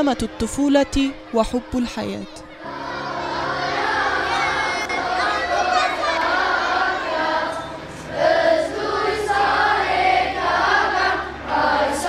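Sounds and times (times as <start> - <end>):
choir singing sustained notes: 0.0 - 12.0.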